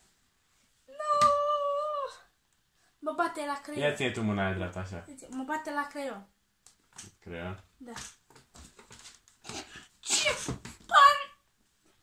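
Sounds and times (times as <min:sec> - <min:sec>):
boy imitating dog howl: 0:00.9 - 0:02.3.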